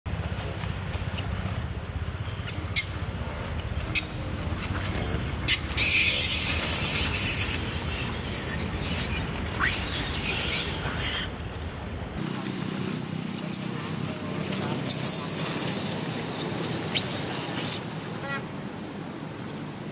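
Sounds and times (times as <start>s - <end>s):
monkey chirps: 5.5s - 11.3s, 13.4s - 17.8s
monkey screaming: 5.5s - 11.3s.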